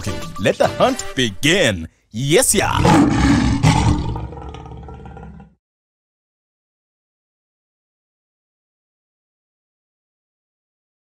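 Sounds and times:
lion roaring: 2.7 - 5.6.

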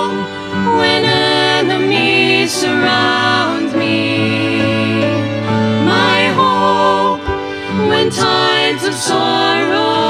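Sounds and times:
group singing a hymn: 0.0 - 10.0
violin accompaniment: 0.0 - 10.0.

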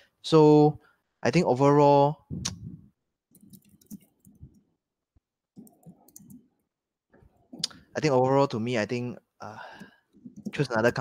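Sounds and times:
computer mouse clicking: 3.3 - 4.6, 5.6 - 6.5, 9.8 - 11.0
scroll wheel ticking: 5.6 - 6.5.

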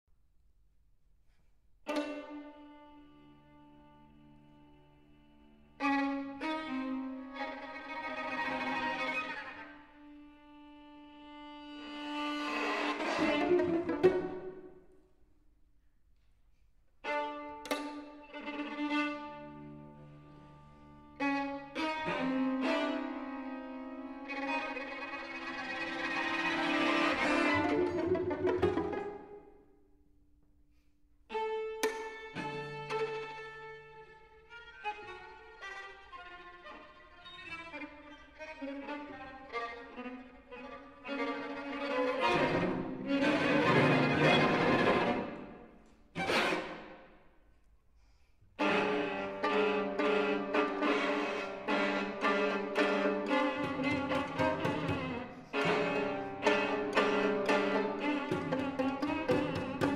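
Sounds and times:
string quartet chords: 1.9 - 15.0, 17.0 - 29.5, 31.3 - 47.2, 48.6 - 59.9.

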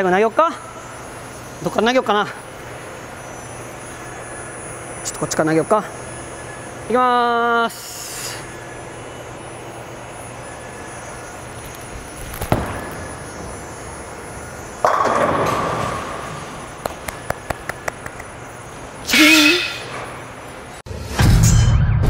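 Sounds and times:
bowling alley hum: 0.0 - 20.8
ball crashing into pins: 12.3 - 13.6, 14.8 - 18.1
bowling ball rolling on lane: 12.4 - 18.2.

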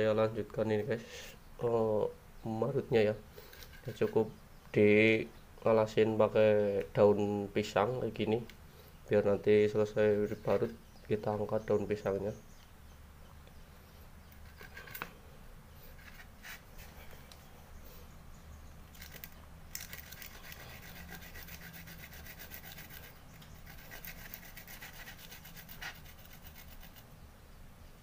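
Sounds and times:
root grated in rasping strokes: 19.0 - 27.0.

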